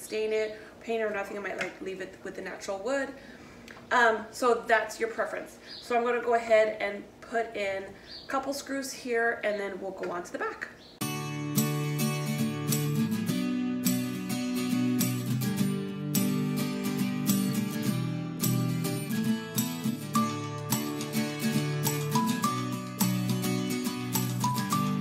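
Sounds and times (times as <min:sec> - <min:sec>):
strummed acoustic guitar: 0:11.0 - 0:25.0.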